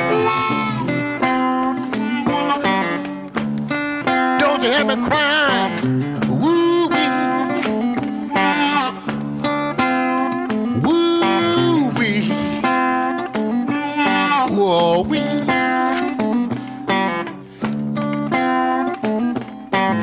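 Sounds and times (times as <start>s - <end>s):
acoustic blues guitar: 0.0s - 20.0s.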